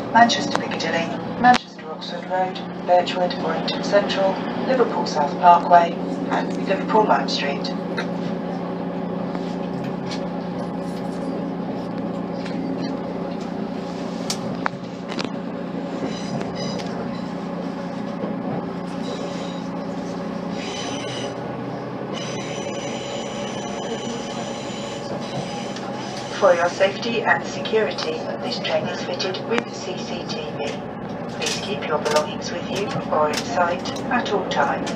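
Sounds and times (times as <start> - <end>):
train diesel engine hum: 0.0 - 34.9
wheel and rail noise: 0.0 - 34.9.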